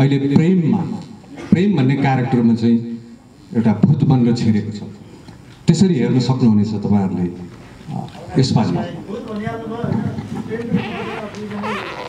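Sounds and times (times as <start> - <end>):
man speaking into a microphone: 0.0 - 12.0.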